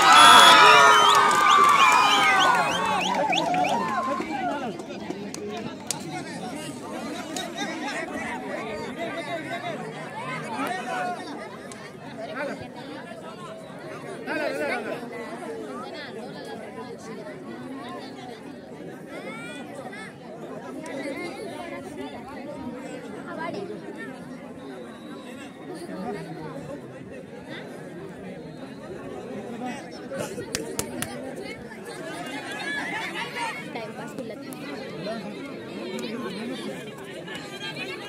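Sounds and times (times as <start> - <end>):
crowd chattering: 0.0 - 38.0.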